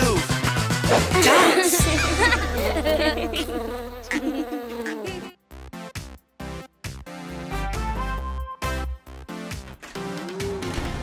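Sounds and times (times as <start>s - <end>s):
cartoon bee buzzing: 1.2s - 5.8s.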